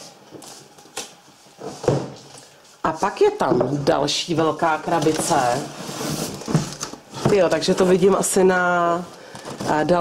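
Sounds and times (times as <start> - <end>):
cardboard boxes rustling and knocking: 1.6 - 2.3, 4.9 - 8.3.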